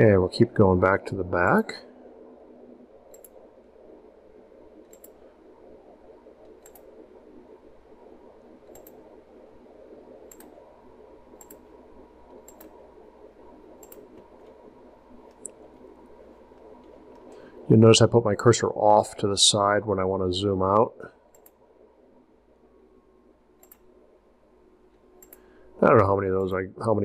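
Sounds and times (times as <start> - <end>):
low room hum: 0.0 - 27.0
computer mouse clicking: 3.1 - 3.4, 4.8 - 5.2, 6.4 - 6.9, 8.6 - 9.0, 10.2 - 10.6, 11.4 - 12.8, 13.8 - 14.6, 21.3 - 21.6, 23.6 - 23.9, 25.2 - 25.5.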